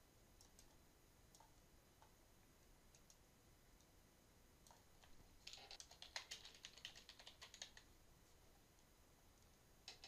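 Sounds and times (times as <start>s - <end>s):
typing on computer keyboard: 4.7s - 7.9s.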